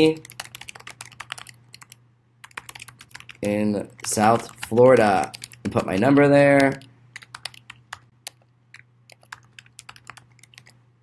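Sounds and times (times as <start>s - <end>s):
typing on computer keyboard: 0.2s - 3.4s, 4.0s - 10.8s.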